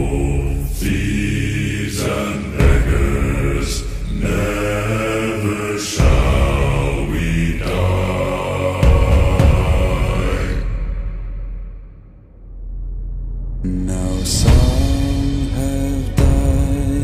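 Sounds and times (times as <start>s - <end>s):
deep voices singing sea shanty: 0.0s - 12.1s, 13.6s - 17.0s.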